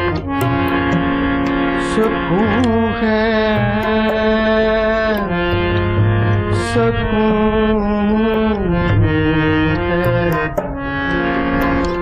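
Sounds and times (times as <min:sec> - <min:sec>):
harmonium melody: 0:00.0 - 0:12.0
tabla drumming: 0:00.0 - 0:12.0.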